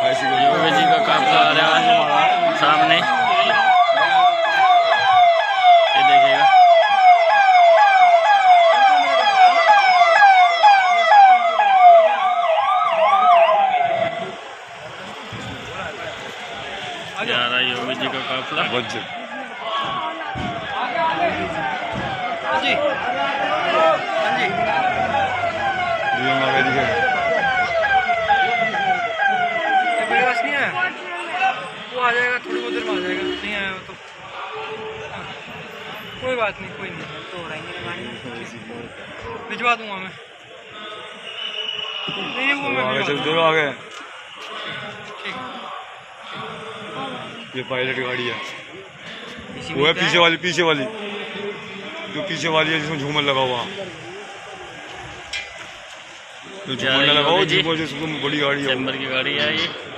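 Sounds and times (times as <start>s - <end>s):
police siren yelping: 0.0s - 15.1s, 16.4s - 31.8s.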